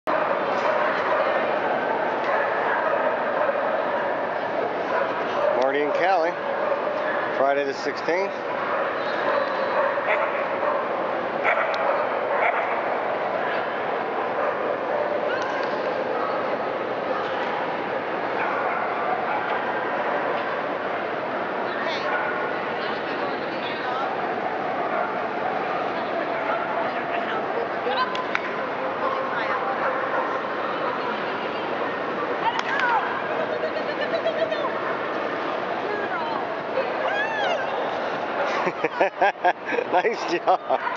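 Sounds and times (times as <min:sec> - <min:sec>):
murmur of crowd indoors: 0:00.0 - 0:40.9
dogs barking: 0:00.1 - 0:07.4, 0:08.3 - 0:15.3, 0:18.3 - 0:21.1, 0:28.6 - 0:31.1
din of many voices: 0:13.1 - 0:40.9.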